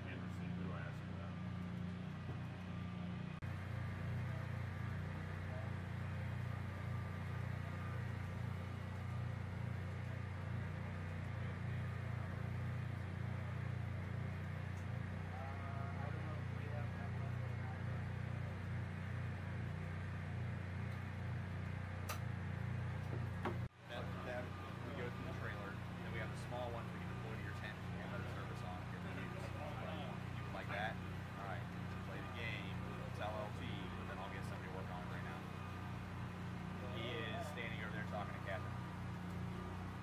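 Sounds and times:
machinery humming: 0:00.0 - 0:40.0.

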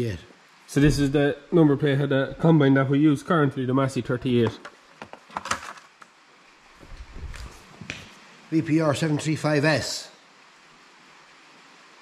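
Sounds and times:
low handling rumble: 0:00.8 - 0:02.7.

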